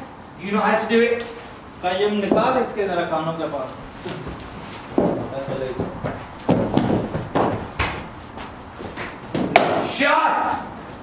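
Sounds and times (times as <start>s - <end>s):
footsteps: 3.5s - 9.8s
sharp crack of ball thrower: 9.3s - 10.0s.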